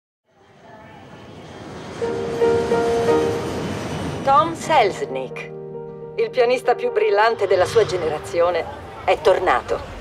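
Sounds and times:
city traffic: 0.3 - 10.0
music: 2.0 - 8.6.

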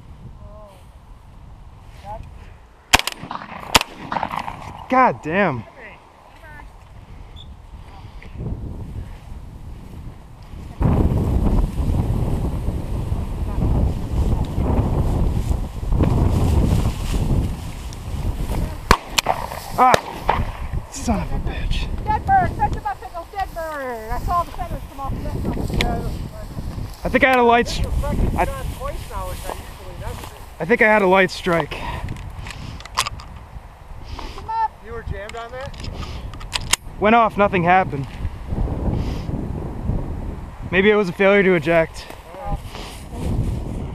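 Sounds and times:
strong wind on microphone: 0.0 - 2.6, 3.2 - 30.6, 31.7 - 43.9
sharp cracks: 2.9 - 5.4, 18.5 - 20.9
shotgun handling click: 35.2 - 36.9.

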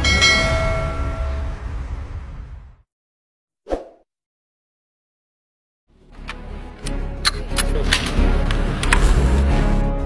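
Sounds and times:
bell-like chime ringing: 0.0 - 1.6
low rumble: 0.0 - 2.9.

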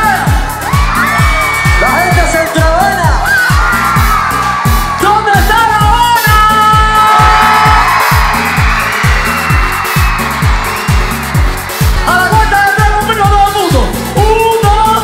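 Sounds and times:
live pop music: 0.0 - 15.0.

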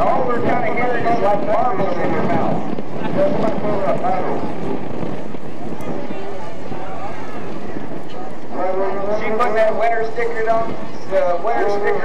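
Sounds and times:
indistinct voices talking: 0.0 - 12.0
steady background rumble: 0.0 - 12.0.

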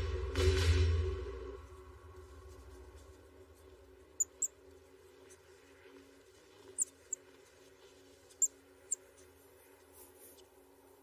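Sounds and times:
faint low rumble: 0.0 - 11.0
small animal squeaks: 4.2 - 4.6, 6.7 - 7.2, 8.3 - 9.1.

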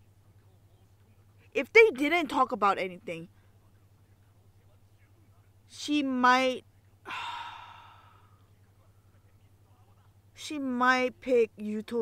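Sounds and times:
person sighing: 7.1 - 8.4.

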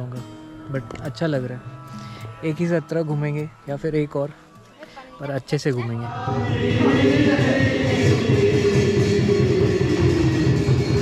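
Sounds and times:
group devotional chanting: 5.8 - 11.0.

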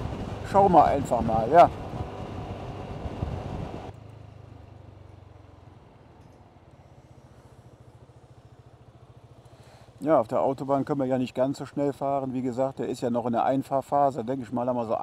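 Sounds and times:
road and wind noise: 0.0 - 15.0
scooter engine idling: 3.9 - 13.1
motor scooter running: 6.6 - 12.4.

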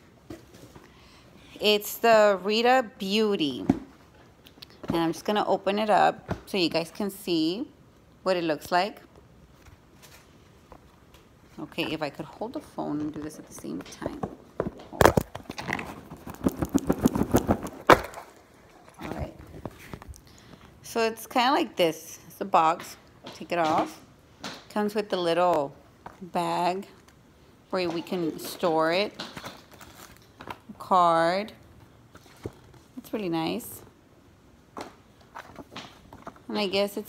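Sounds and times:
package handling scrapes and rustles: 14.6 - 20.2, 29.3 - 30.6.

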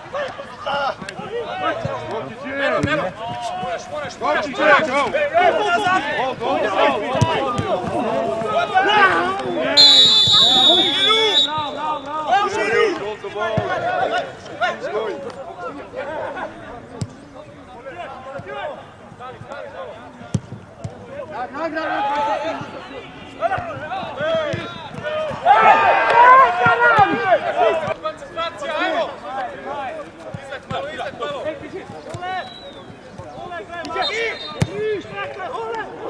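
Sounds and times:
players shouting: 0.0 - 36.0
referee's whistle blast: 9.5 - 12.4, 32.4 - 32.9, 33.9 - 34.8.

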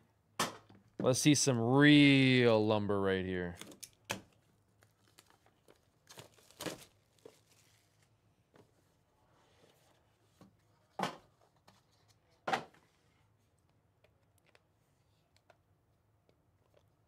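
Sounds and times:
plastic shrink wrap crinkling: 4.7 - 8.1.

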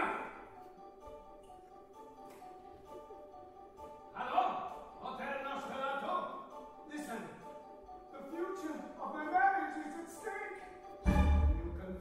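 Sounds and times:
soft instrumental band music: 11.0 - 12.0.

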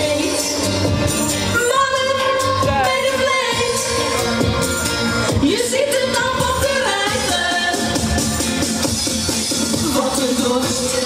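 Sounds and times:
woman singing into a microphone: 0.0 - 4.4, 5.3 - 8.3
pop music with steady beat: 0.0 - 11.0.

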